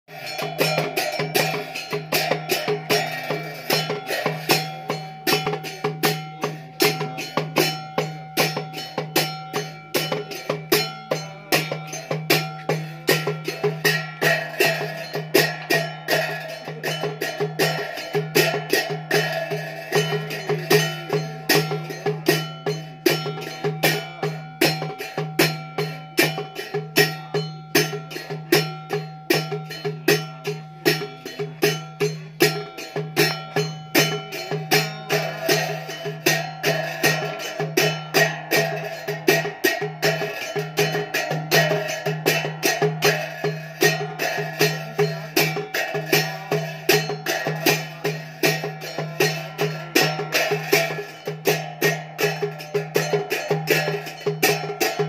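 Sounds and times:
hand cymbal strikes: 0.1 - 55.0.

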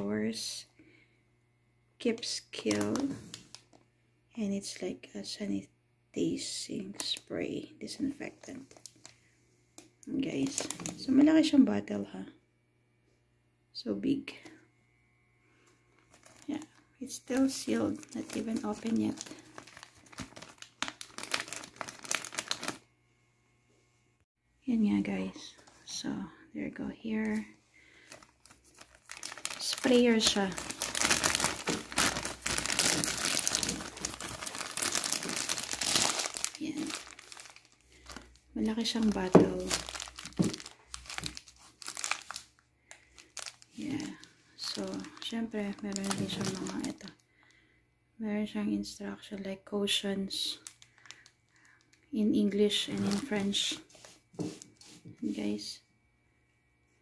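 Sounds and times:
plastic bag crinkling: 2.2 - 3.8, 6.8 - 9.2, 9.8 - 11.3, 16.0 - 22.9, 27.0 - 47.2, 50.3 - 55.0.

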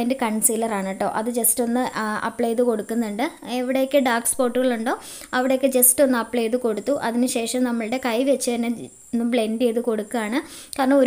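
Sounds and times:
woman speaking: 0.0 - 11.0.

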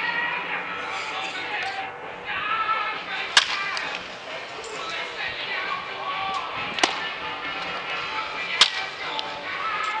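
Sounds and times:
ballpark background noise: 0.0 - 10.0
faint music: 0.0 - 10.0
baseball bat cracking ball: 3.3 - 4.0, 6.7 - 7.1, 8.5 - 9.2.

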